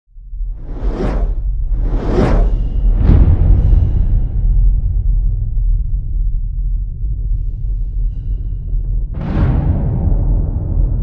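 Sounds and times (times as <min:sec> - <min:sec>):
deep steady rumble: 0:00.1 - 0:11.0
cinematic whoosh: 0:00.5 - 0:05.2.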